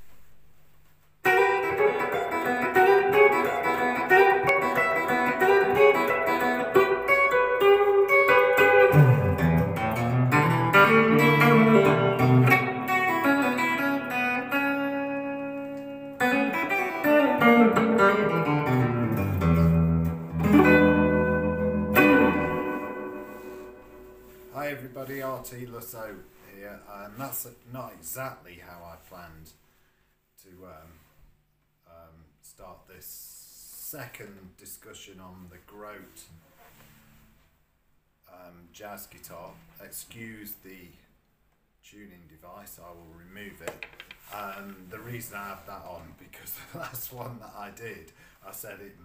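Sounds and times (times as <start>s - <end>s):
electric jazz guitar playing: 1.2s - 24.6s.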